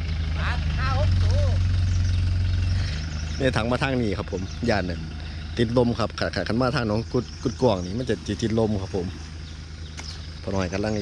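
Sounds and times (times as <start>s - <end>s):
pickup truck engine droning: 0.0s - 11.0s.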